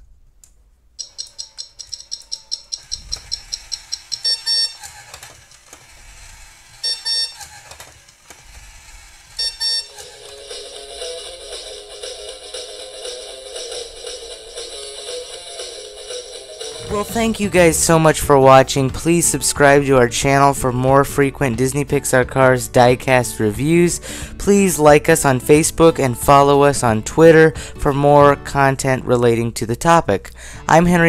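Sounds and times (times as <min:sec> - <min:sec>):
electronic alarm ringing: 0:01.0 - 0:05.1, 0:06.6 - 0:07.7, 0:09.4 - 0:17.2
toy music: 0:01.0 - 0:18.0.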